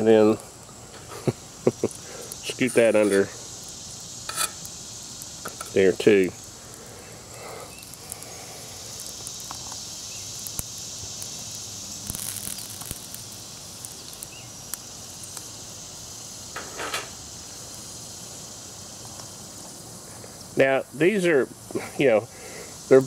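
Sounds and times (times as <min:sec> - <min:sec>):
fire crackling and popping: 0:00.0 - 0:23.0
steady high hiss: 0:00.0 - 0:23.0.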